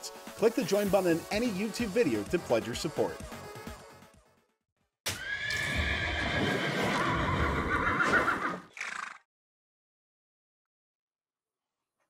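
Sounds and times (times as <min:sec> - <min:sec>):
horse whinny: 0:05.1 - 0:09.2.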